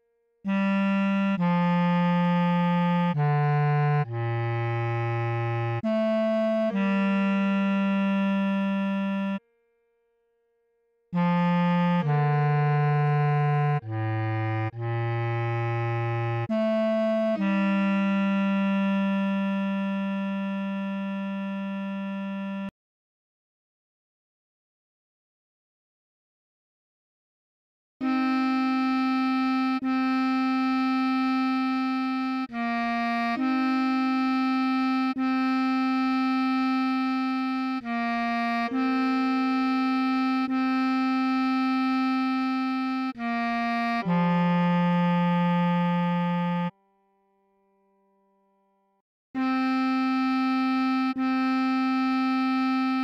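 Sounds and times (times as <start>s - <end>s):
bass clarinet notes: 0.0s - 9.4s, 11.2s - 22.7s, 28.0s - 46.8s, 49.4s - 53.0s.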